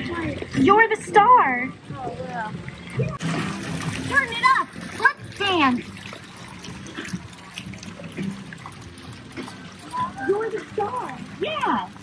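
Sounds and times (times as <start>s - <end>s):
fountain water splashing into pool: 0.0s - 12.0s.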